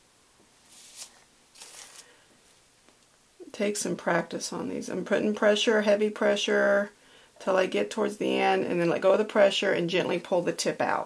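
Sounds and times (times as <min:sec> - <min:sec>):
piping bag crinkling: 0:00.7 - 0:02.2.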